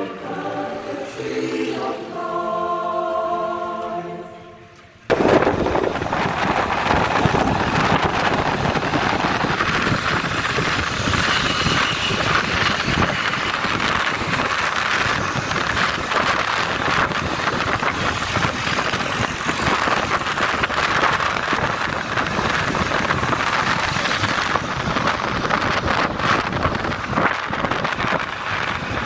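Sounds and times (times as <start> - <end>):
wind on microphone: 5.1 - 29.0.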